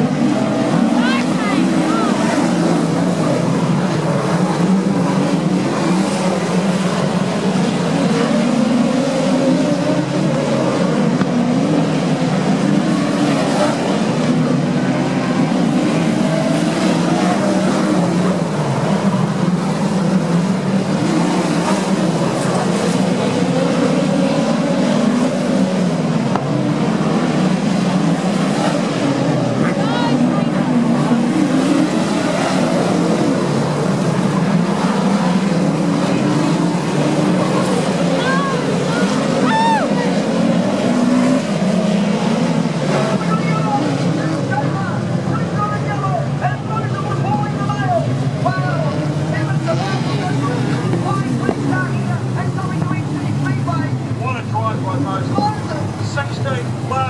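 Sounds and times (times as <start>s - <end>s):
race car engines running: 0.0s - 57.0s.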